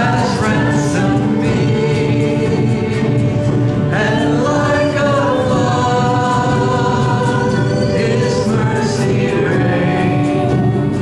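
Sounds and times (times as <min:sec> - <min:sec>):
singers holding long notes: 0:00.0 - 0:11.0
strummed guitars: 0:00.0 - 0:11.0.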